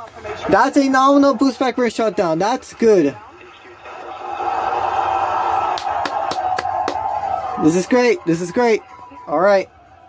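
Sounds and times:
crowd cheering and clapping: 0:03.9 - 0:10.0
sharp claps and whoops: 0:04.3 - 0:07.6.

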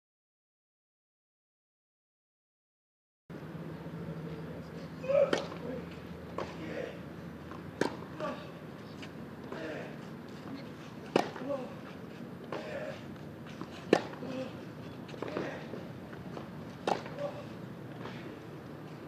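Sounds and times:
tennis racket hitting ball: 0:05.1 - 0:05.7, 0:07.5 - 0:08.4, 0:11.1 - 0:11.7, 0:13.6 - 0:14.5, 0:16.4 - 0:18.2.

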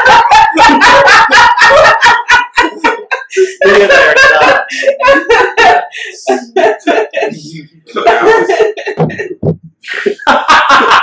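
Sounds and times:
people laughing hard: 0:00.0 - 0:11.0.

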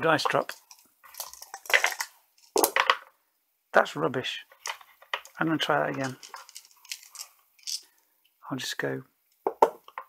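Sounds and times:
dice rattling in a cup: 0:00.2 - 0:03.0, 0:06.0 - 0:07.8
dice clattering into cardboard box: 0:00.2 - 0:03.1, 0:06.0 - 0:07.8.

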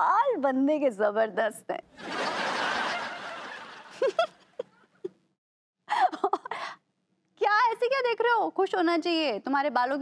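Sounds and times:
laugh track laughter: 0:02.0 - 0:05.1.

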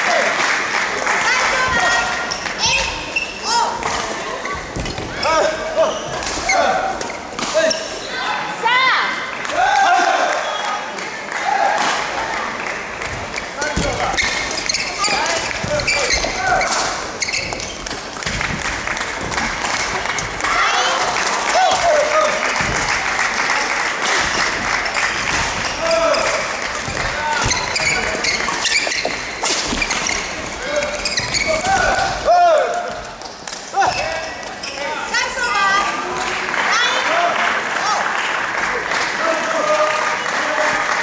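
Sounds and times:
shoes squeaking on court floor: 0:01.5 - 0:08.2, 0:13.0 - 0:35.0
footfall thuds: 0:22.5 - 0:23.4.

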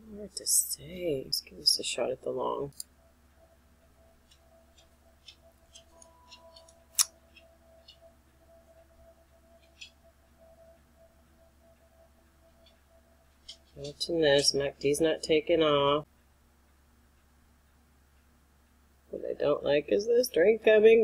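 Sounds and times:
faint electrical hum: 0:00.0 - 0:21.0
sharp click: 0:05.3 - 0:07.2.

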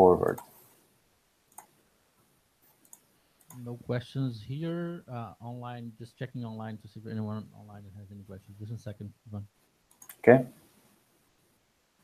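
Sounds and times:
man speaking: 0:00.0 - 0:00.4, 0:03.5 - 0:09.5, 0:10.1 - 0:10.6
computer mouse clicks: 0:00.3 - 0:00.6, 0:01.5 - 0:01.8, 0:02.6 - 0:03.7, 0:09.9 - 0:10.2.

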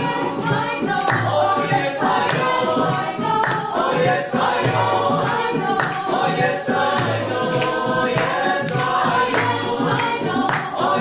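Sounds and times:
choir singing: 0:00.0 - 0:11.0.

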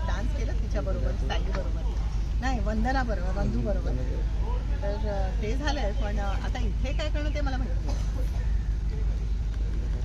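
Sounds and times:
vehicle engines rumbling: 0:00.0 - 0:10.0.

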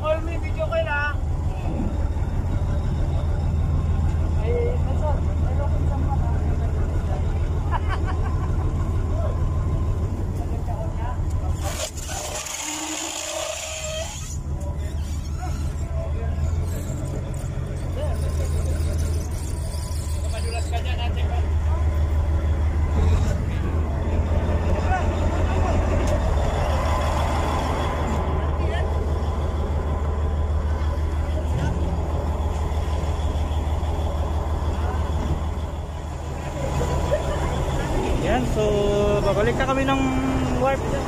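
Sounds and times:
voices in background: 0:00.0 - 0:07.7, 0:14.0 - 0:27.0.

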